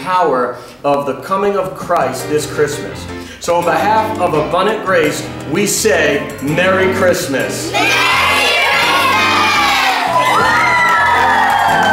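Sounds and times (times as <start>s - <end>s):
children shouting and cheering: 7.6s - 11.9s.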